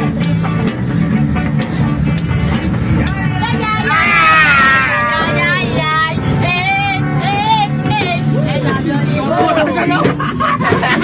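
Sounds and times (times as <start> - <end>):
high-pitched voices singing: 3.3 - 7.5.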